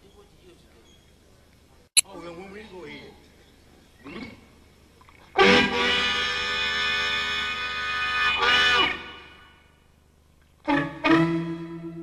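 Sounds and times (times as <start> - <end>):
blues harmonica chord: 5.6 - 9.6.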